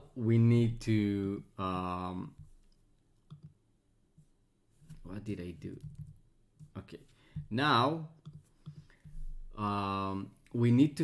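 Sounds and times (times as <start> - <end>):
faint computer mouse clicks: 2.7 - 3.6.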